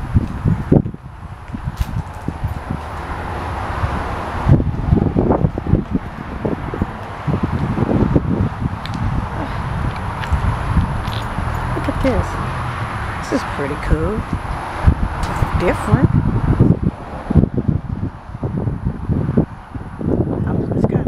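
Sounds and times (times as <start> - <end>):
wind buffeting microphone: 0.0 - 21.0
handling noise bumps: 1.5 - 3.2.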